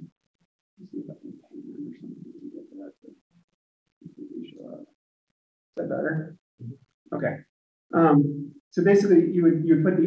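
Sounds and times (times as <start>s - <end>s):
muffled voice over video call: 0.8s - 3.1s, 4.1s - 4.9s, 5.8s - 10.0s.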